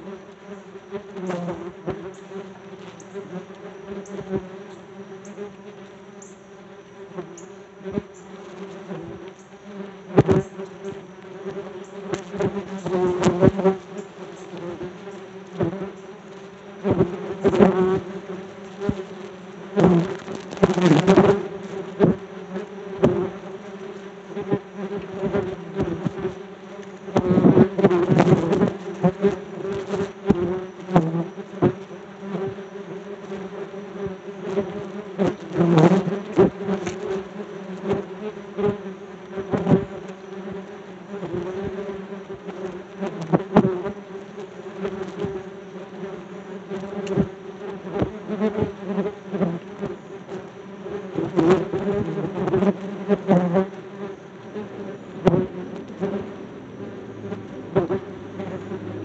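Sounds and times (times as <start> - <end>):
wasps buzzing: 0.0 - 59.0.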